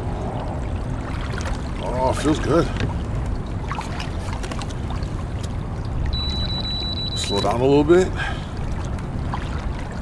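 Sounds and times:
water lapping against kayak hull: 0:00.0 - 0:06.1, 0:08.2 - 0:10.0
wind rumble on microphone: 0:00.0 - 0:06.6.

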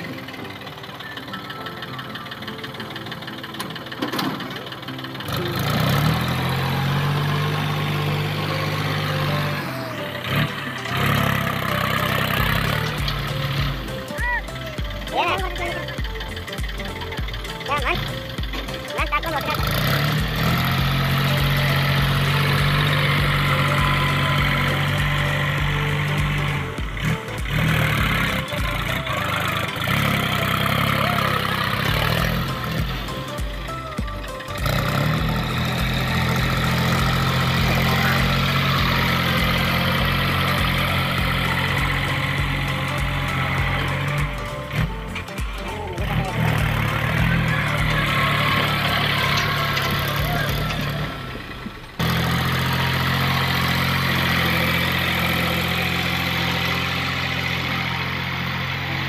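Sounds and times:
tractor diesel engine under load: 0:00.0 - 0:59.0
song with singing: 0:20.3 - 0:51.3.

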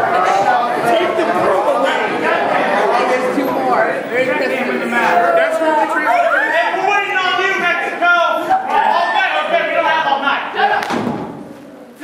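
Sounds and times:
voices: 0:00.0 - 0:12.0
dull thump: 0:10.8 - 0:11.4.

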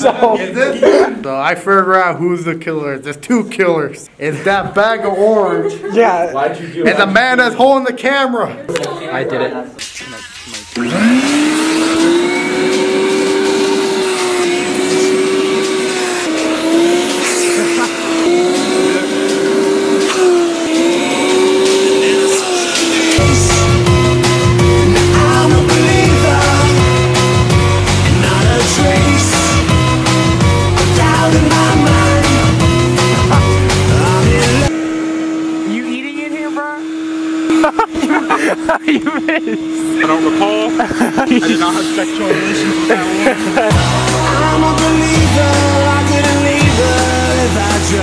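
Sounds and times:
background music: 0:09.8 - 0:34.7, 0:41.5 - 0:48.0
vacuum cleaner running: 0:10.3 - 0:48.0.

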